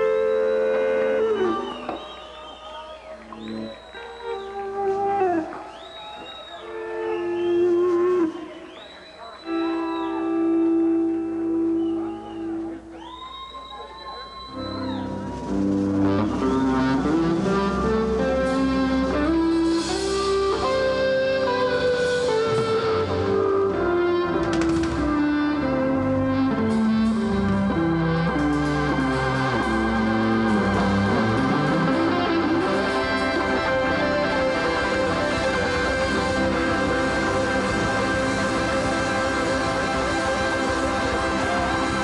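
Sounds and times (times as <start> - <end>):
electric guitar melody: 0.0 - 2.2, 3.2 - 5.7, 6.6 - 8.5, 9.4 - 12.7, 14.6 - 42.0
live rock band playing: 0.0 - 2.3, 3.2 - 8.7, 9.4 - 12.7, 14.5 - 42.0.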